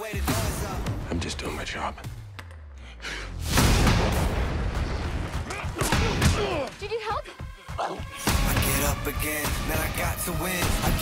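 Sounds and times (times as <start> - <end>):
trailer music: 0.0 - 11.0
loud boom: 3.4 - 5.4
crashing and gunfire-like noise: 3.4 - 6.4.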